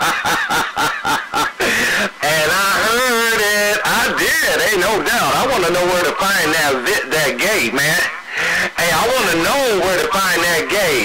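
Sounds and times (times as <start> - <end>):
radio hiss: 1.4 - 11.0
garbled voices over radio: 2.2 - 11.0.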